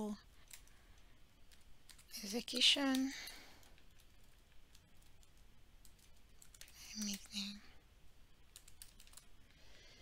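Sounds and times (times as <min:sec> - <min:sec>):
keyboard typing: 0:00.4 - 0:07.6, 0:08.5 - 0:09.3.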